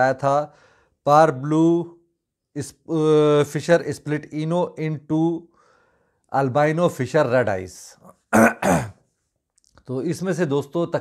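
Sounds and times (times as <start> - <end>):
man clearing his throat: 8.3 - 9.0.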